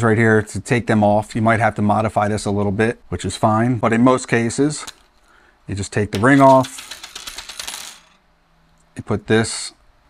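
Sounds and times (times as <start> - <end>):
metal ring clinking on table: 6.2 - 8.2.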